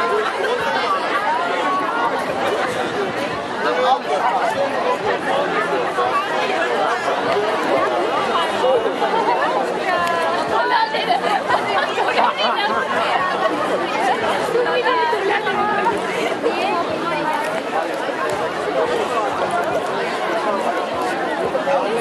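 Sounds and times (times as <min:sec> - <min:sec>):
crowd chatter: 0:00.0 - 0:22.0.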